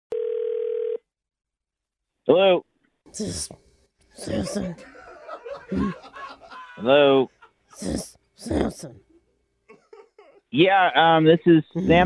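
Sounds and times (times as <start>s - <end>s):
telephone tone: 0.1s - 1.1s.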